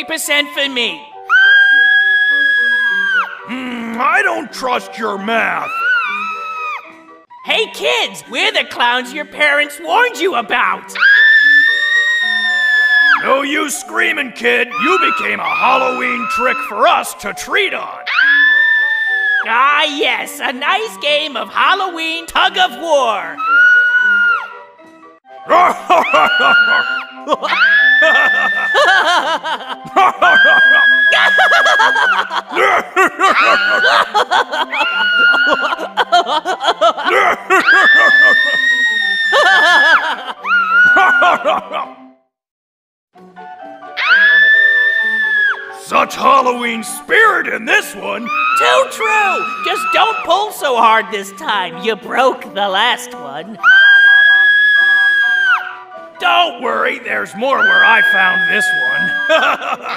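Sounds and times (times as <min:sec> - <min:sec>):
faint background music: 0:00.0 - 0:42.0, 0:43.2 - 0:59.9
girl screaming: 0:01.3 - 0:03.4, 0:05.6 - 0:06.9, 0:11.0 - 0:13.3, 0:14.7 - 0:16.8, 0:18.1 - 0:19.5, 0:23.4 - 0:24.5, 0:25.5 - 0:29.3, 0:30.0 - 0:36.1, 0:37.5 - 0:41.6, 0:44.0 - 0:45.6, 0:48.3 - 0:50.4, 0:53.6 - 0:55.8, 0:57.6 - 0:59.7
cackling clown laughter: 0:25.5 - 0:42.0, 0:57.6 - 0:59.9.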